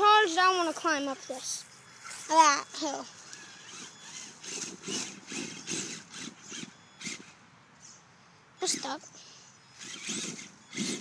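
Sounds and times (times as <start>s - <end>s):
toy truck motor whining: 2.0s - 7.4s, 8.6s - 11.0s.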